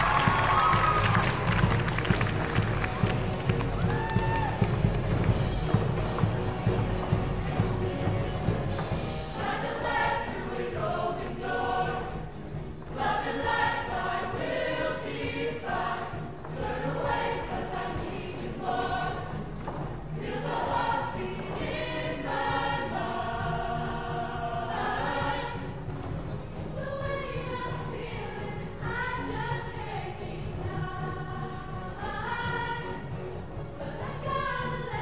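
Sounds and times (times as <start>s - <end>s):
choir singing in harmony: 5.3s - 35.0s.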